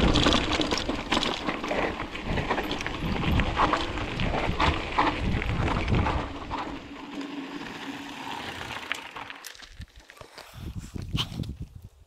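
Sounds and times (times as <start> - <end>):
bike frame rattling: 0.0 - 10.1
bike tyres crunching on gravel: 0.0 - 11.5.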